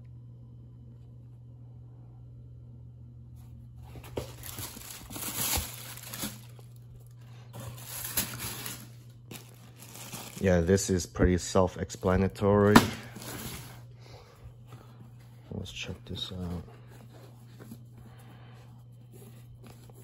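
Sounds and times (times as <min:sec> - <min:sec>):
steady low hum: 0:00.0 - 0:20.0
tissue paper rustling in a box: 0:03.8 - 0:10.9, 0:13.1 - 0:13.8.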